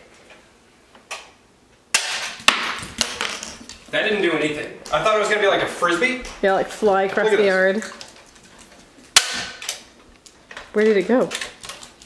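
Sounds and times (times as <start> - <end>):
dog claws on wooden floor: 2.2 - 5.1, 7.4 - 12.0.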